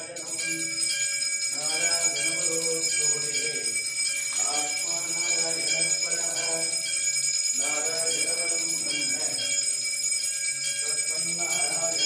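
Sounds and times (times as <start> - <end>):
brass hand bell ringing: 0.0 - 12.0.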